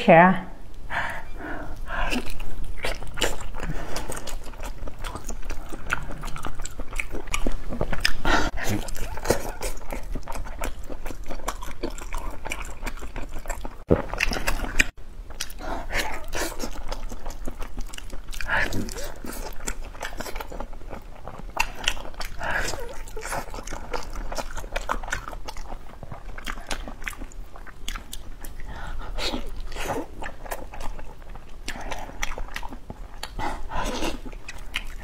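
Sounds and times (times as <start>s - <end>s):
person chewing with mouth smacks: 1.7s - 35.0s.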